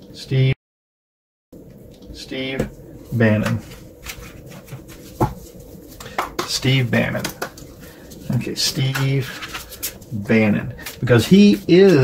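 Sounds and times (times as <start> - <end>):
cards being shuffled: 3.5 - 10.2.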